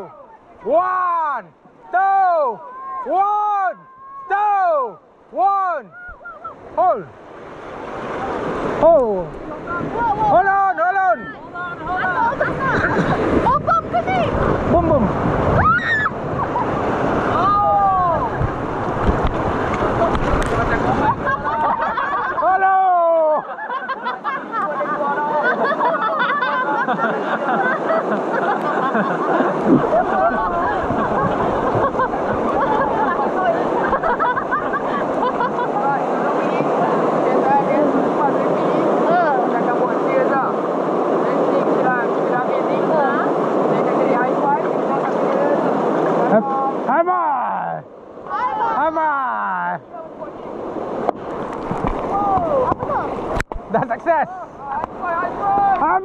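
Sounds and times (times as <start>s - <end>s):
people shouting wordless calls: 0.0s - 7.1s
whitewater rapids rushing: 0.0s - 56.0s
people chattering: 8.1s - 46.8s, 52.0s - 56.0s.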